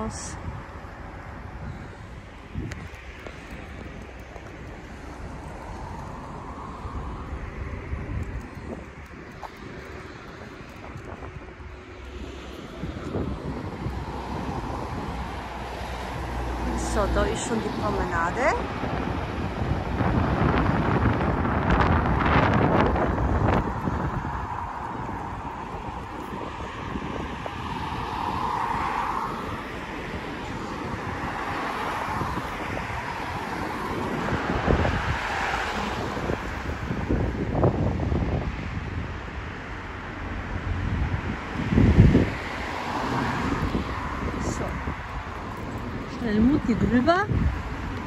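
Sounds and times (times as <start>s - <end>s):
cars passing: 0.0s - 48.0s
wind buffeting microphone: 0.0s - 48.0s.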